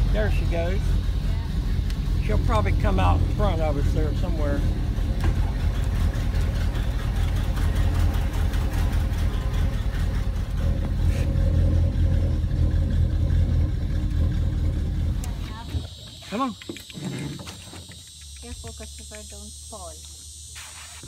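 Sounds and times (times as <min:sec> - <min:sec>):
boat engine rumbling: 0:00.0 - 0:20.5.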